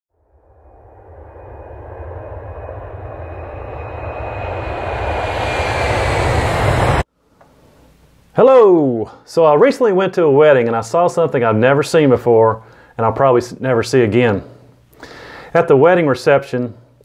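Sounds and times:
deep rushing rumble: 0.2 - 7.1
thin gliding tone: 0.2 - 7.1.

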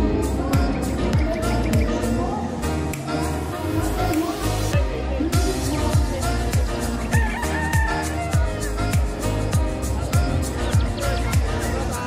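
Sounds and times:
music with steady beat: 0.0 - 12.0
rooster crowing: 7.1 - 8.6.

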